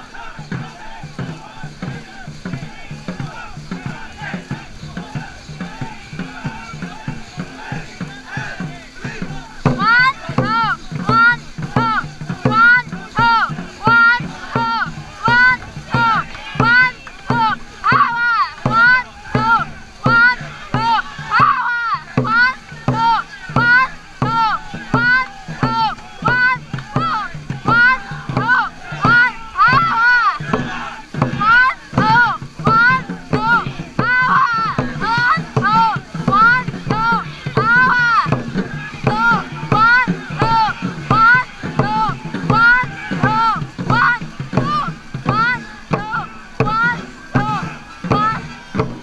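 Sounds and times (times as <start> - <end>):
crew shouting rhythmically: 0.0 - 49.0
drum beats: 0.0 - 49.0
paddle splashes: 0.0 - 49.0
rushing water: 0.0 - 49.0.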